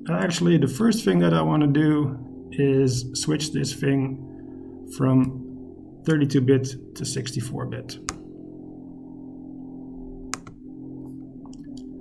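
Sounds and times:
computer fan humming: 0.0 - 12.0
mouse click: 8.0 - 8.3, 10.4 - 10.6.

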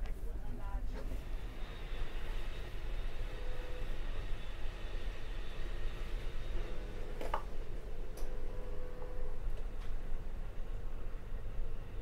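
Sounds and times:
train rumbling from inside: 0.0 - 12.0.

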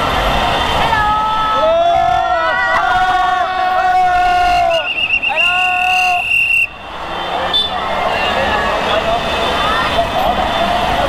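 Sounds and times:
motorbike and car traffic rumble: 0.0 - 11.0
crowd voices calling out: 0.6 - 11.0.

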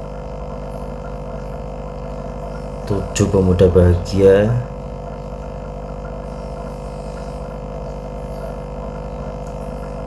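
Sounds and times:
electrical hum with buzz: 0.0 - 10.0.

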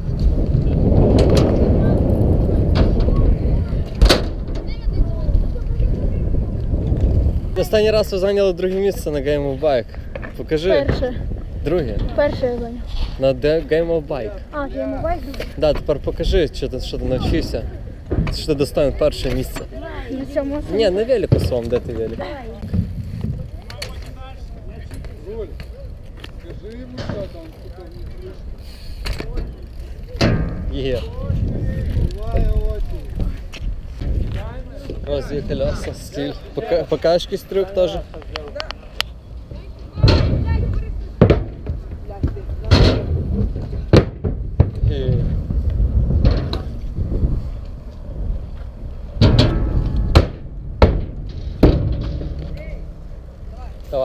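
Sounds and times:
bike clicks and knocks: 0.0 - 5.8, 18.0 - 20.5, 21.1 - 35.2, 37.6 - 54.0
wheels clacking on ramps: 0.0 - 7.3, 39.5 - 47.4, 48.1 - 54.0
wind on microphone: 0.0 - 13.6, 14.4 - 26.6, 27.2 - 36.6, 39.2 - 53.4
bike rolling on asphalt: 0.0 - 54.0
distant voices: 0.0 - 54.0.

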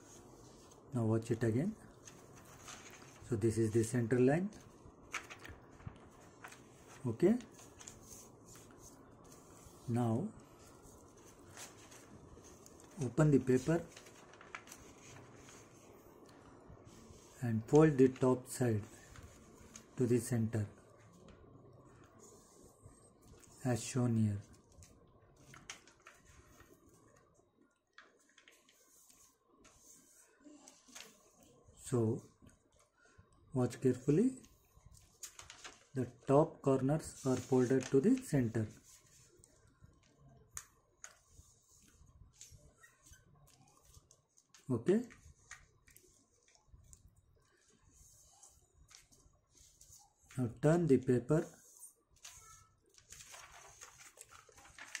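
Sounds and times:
paper rustling and creasing: 1.6 - 22.6, 23.2 - 27.3, 27.9 - 31.6, 34.1 - 50.7, 51.4 - 55.0
paper rustling on stone countertop: 2.0 - 3.3, 5.1 - 17.4, 34.9 - 36.0, 37.0 - 39.5, 51.5 - 55.0.

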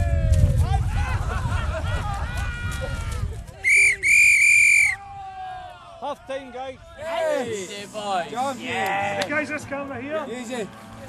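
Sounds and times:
voices shouting: 0.7 - 11.0
referee's whistle: 3.6 - 5.0.

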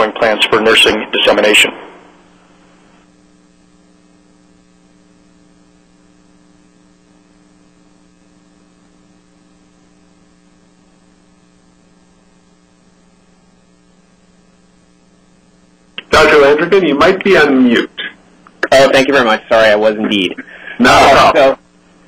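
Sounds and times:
electrical mains hum: 0.0 - 22.0.

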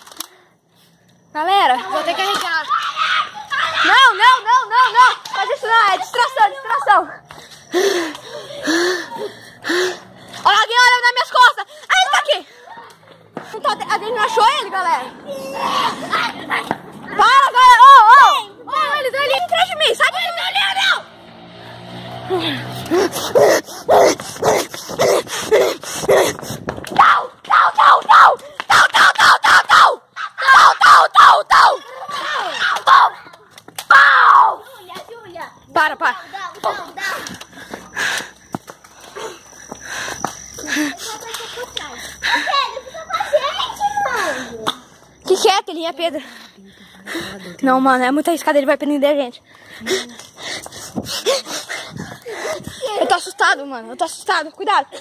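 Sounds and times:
children shrieking and yelling: 1.5 - 21.6, 22.2 - 35.4, 36.1 - 38.3, 39.0 - 46.2
breathy vocal sounds from kids: 7.4 - 10.4, 22.3 - 26.5, 39.1 - 45.0.

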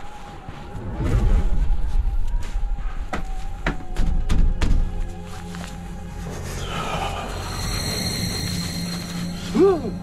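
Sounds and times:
high drone: 6.6 - 10.0.

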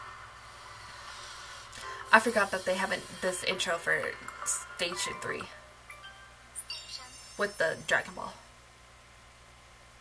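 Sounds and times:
faint hiss and low hum: 0.0 - 10.0.

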